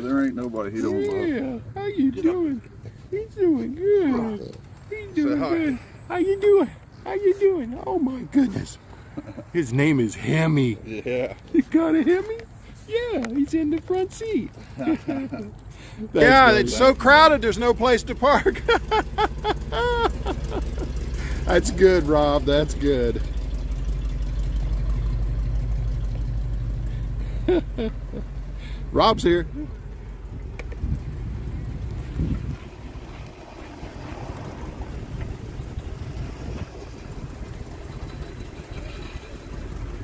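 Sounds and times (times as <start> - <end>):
car engine idling: 0.0 - 40.0
person laughing: 9.0 - 9.6, 14.6 - 15.6, 18.4 - 21.5, 27.2 - 28.8.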